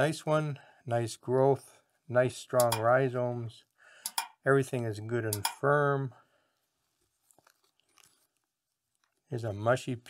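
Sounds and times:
faint crackles of handling: 6.5 - 9.5.

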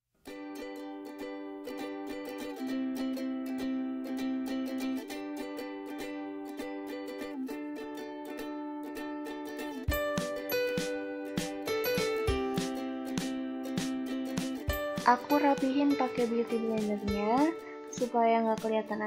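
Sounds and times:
strummed plucked strings music: 0.2 - 19.0.

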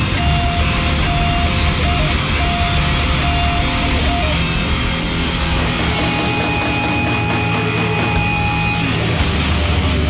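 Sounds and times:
heavy rock with distorted guitars: 0.0 - 10.0.

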